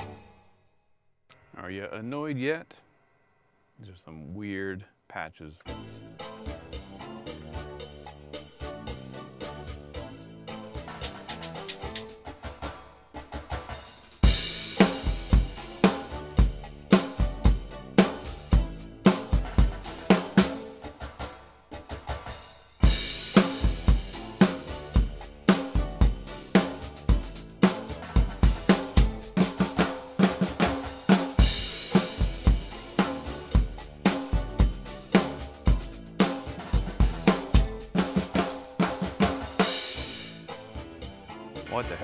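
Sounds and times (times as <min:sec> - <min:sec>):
drum kit rock beat: 0:00.0 - 0:00.4, 0:05.7 - 0:42.0.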